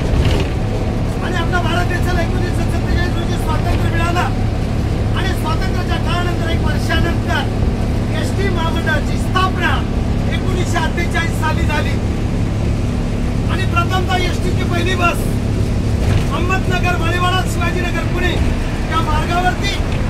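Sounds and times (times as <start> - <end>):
bus engine droning: 0.0 - 20.0
man speaking loudly: 1.2 - 4.4, 5.0 - 12.1, 13.4 - 15.5, 16.2 - 20.0.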